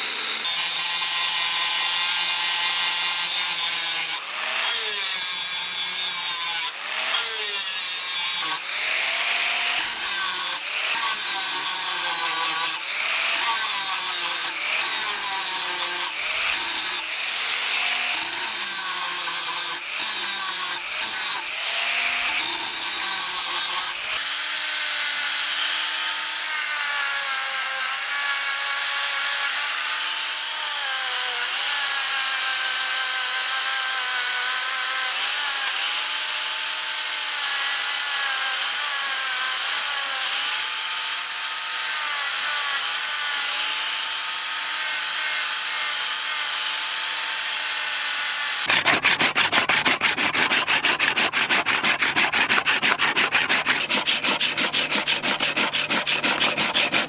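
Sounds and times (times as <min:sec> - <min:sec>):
angle grinder sanding steel blade: 0:00.0 - 0:29.6, 0:41.5 - 0:57.0
handsaw cutting wood: 0:00.0 - 0:57.0.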